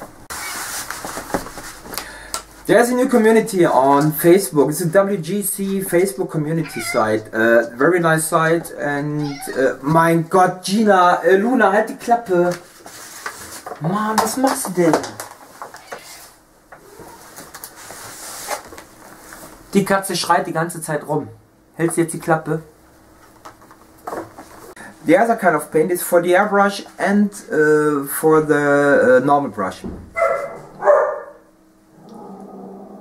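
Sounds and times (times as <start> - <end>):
cat making faint calls: 6.6 - 7.2, 9.2 - 9.8, 15.8 - 16.3
dog barking: 30.2 - 31.5.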